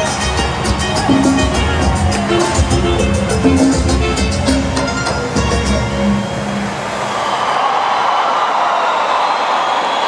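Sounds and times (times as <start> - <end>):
crowd cheering and screaming: 0.0 - 10.0.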